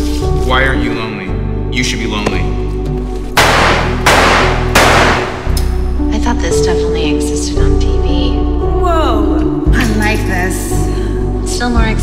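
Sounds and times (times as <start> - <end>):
background music: 0.0 - 12.0
handgun shots: 3.4 - 5.7.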